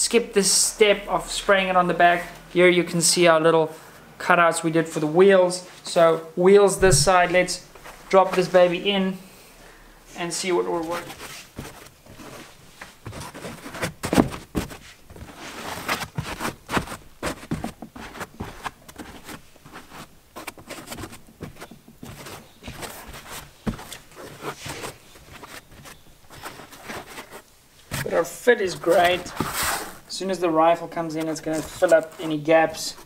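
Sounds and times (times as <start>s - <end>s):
foam rustling and scuffing: 6.8s - 9.1s, 10.2s - 33.0s.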